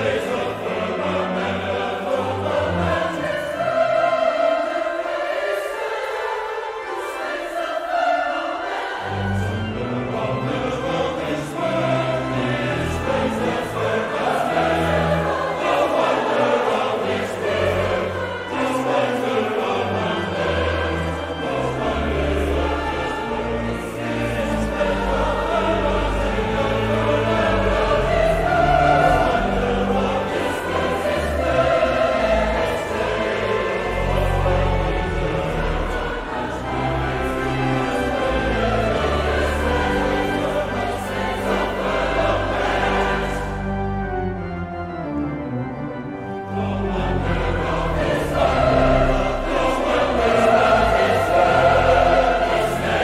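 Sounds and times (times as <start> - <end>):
mixed choir singing: 0.0 - 53.0
pipe organ bass notes: 8.8 - 53.0.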